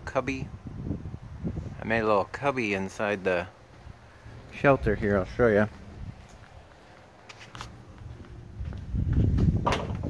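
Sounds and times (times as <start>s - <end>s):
footsteps: 3.6s - 10.0s.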